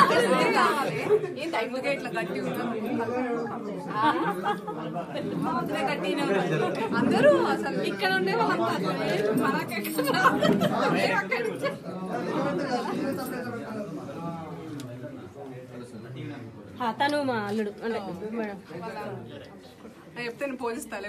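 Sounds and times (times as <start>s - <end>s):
people chattering: 0.0s - 21.0s.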